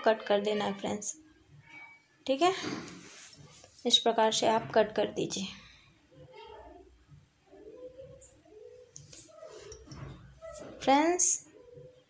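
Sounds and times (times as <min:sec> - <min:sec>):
woman speaking: 0:02.3 - 0:02.8, 0:03.8 - 0:05.6, 0:10.8 - 0:11.5.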